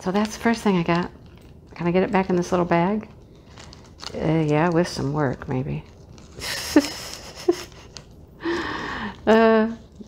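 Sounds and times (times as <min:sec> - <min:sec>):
woman gasping: 0:08.4 - 0:09.2.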